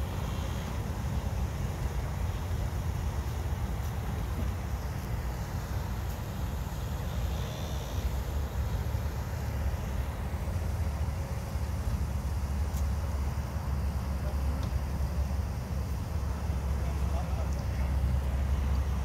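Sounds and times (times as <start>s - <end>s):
faint high whine: 0.0s - 19.0s.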